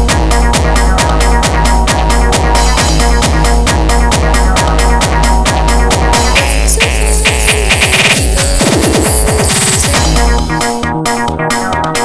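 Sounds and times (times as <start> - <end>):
fast kick drum roll: 6.2 - 10.2
held synth tone: 6.3 - 9.8.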